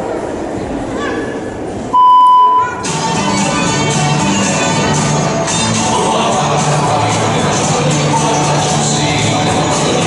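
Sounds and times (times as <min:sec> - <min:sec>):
crowd murmur in a hall: 0:00.0 - 0:10.0
loud electronic beep: 0:02.0 - 0:02.8
music over speakers: 0:02.6 - 0:10.0.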